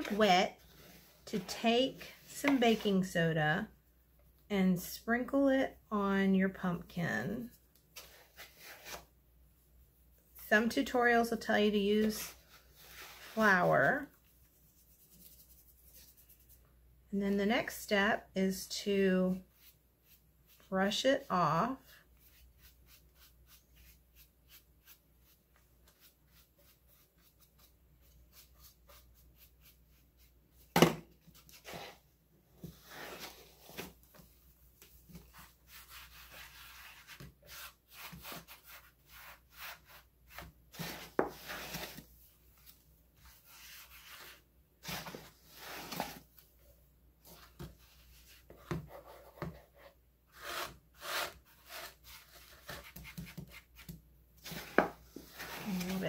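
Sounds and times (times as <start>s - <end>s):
brush scrubbing plastic: 19.3s - 30.4s.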